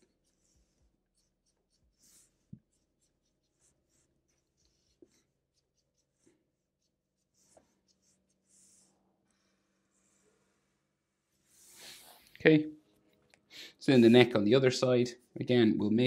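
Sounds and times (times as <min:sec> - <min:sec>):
marker scratching on paper: 0:00.0 - 0:09.0, 0:13.9 - 0:14.4.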